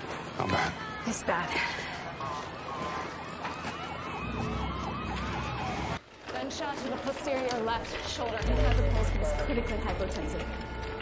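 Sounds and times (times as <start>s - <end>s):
siren yelping: 1.9s - 6.0s
low rumble: 8.4s - 11.0s.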